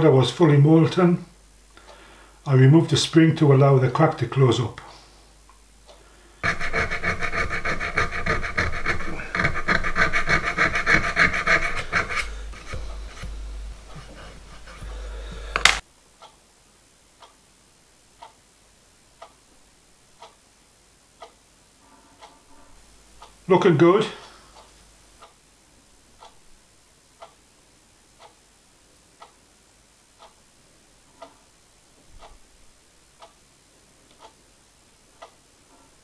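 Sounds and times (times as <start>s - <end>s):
faint ticking: 0.9s - 2.5s, 4.8s - 16.5s, 21.1s - 21.5s, 22.2s - 25.5s, 26.2s - 27.5s, 28.1s - 28.5s, 29.1s - 29.5s, 30.1s - 35.5s
metal tool scraping gear: 6.4s - 14.9s
sharp click: 15.6s - 15.8s.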